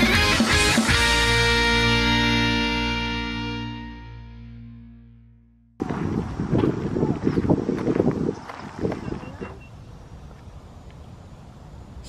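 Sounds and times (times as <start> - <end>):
intro music: 0.0 - 5.8
wind buffeting microphone: 5.8 - 11.3.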